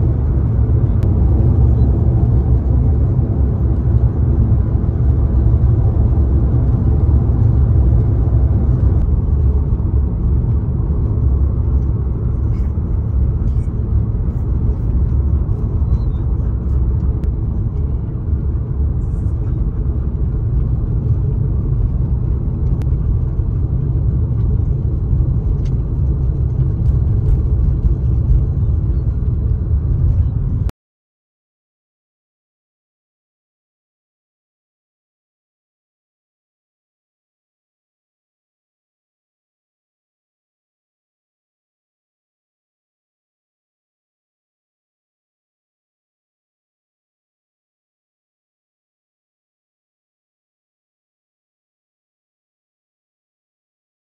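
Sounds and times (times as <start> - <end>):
vehicle cabin road rumble: 0.0 - 30.7.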